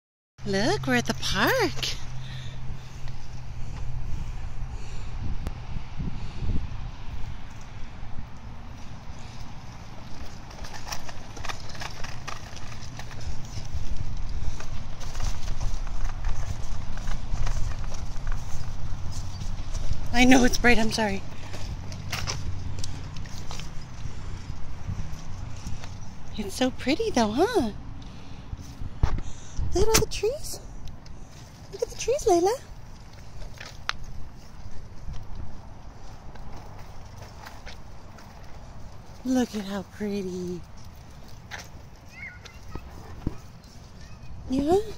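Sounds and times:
stroller wheels rumbling on asphalt: 0.4 - 44.9
footsteps on pavement: 1.0 - 4.8, 7.0 - 44.9.

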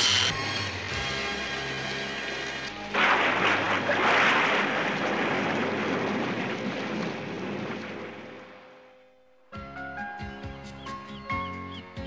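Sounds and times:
crashing waves: 2.8 - 8.6.

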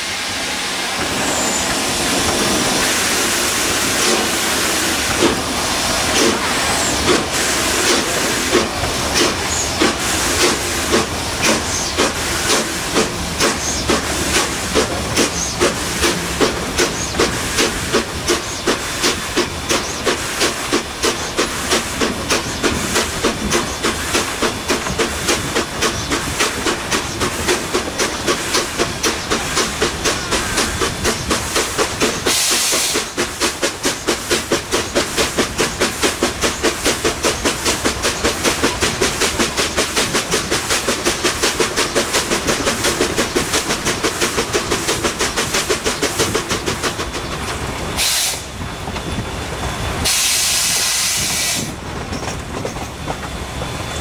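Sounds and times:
steam hissing: 0.0 - 54.0
steam locomotive chuffing: 0.0 - 54.0
train running noise: 0.0 - 54.0.

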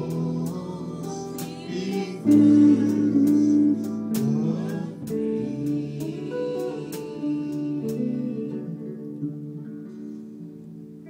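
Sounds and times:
people singing: 0.0 - 8.9
country gospel band playing: 0.0 - 11.0
guitars: 0.0 - 11.0.

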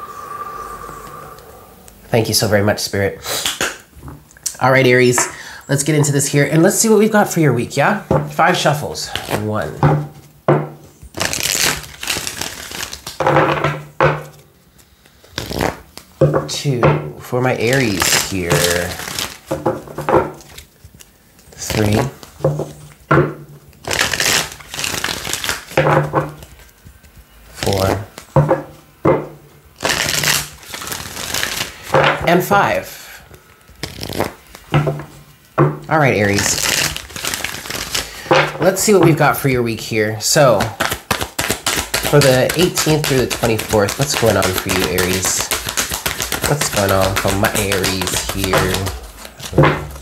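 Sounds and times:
cards being riffle-shuffled: 6.1 - 16.8, 17.4 - 23.0, 23.6 - 28.8, 29.8 - 50.0.

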